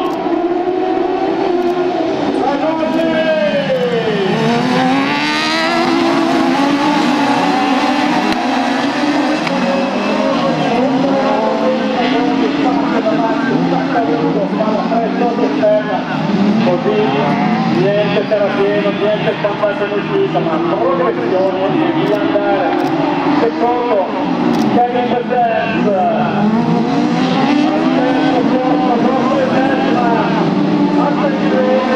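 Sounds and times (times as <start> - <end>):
racing buggy engines revving: 0.0 - 31.9.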